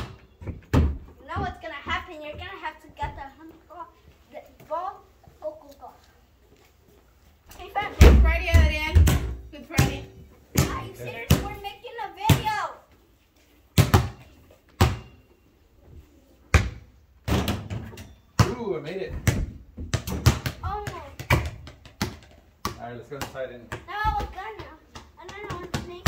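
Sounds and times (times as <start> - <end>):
basketball bouncing on concrete: 0.0 - 3.3, 7.9 - 12.6, 13.8 - 15.2, 16.5 - 26.0.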